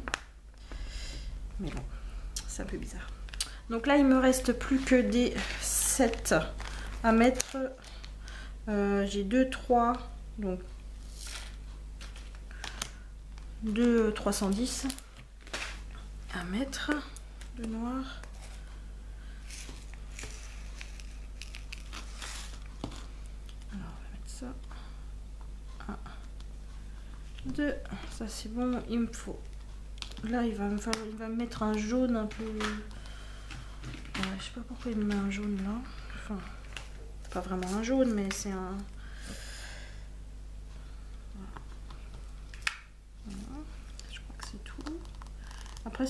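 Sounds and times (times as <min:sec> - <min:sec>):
soft brushing hiss: 0:15.8 - 0:29.2.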